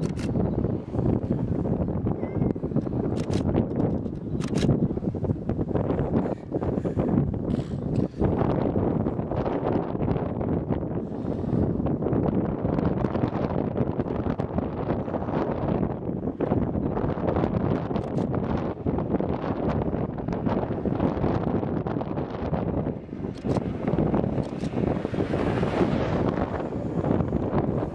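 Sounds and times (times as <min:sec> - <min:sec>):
wind buffeting microphone: 0:00.0 - 0:27.9.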